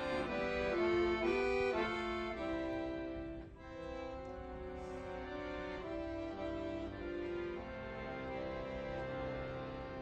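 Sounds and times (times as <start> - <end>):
accordion: 0.0 - 10.0.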